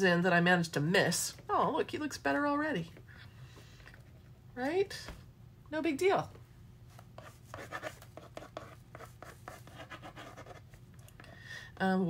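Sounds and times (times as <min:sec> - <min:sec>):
pen scratching on paper: 0:07.2 - 0:10.7.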